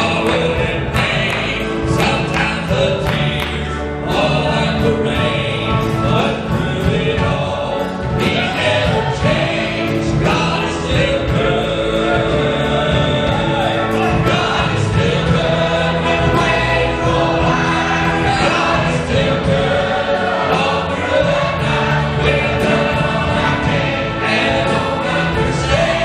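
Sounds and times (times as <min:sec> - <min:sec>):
band with drums: 0:00.0 - 0:26.0
choir singing gospel: 0:00.0 - 0:26.0
male soloists singing: 0:00.0 - 0:26.0.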